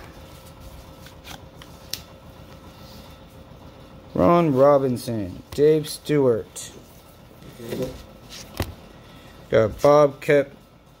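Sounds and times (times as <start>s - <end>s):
cards sliding while flipped: 7.7s - 8.8s.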